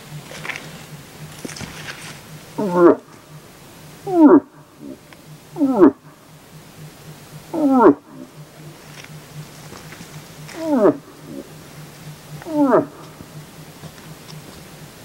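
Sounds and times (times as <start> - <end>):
moose grunts: 0.4 - 3.2, 9.6 - 13.3.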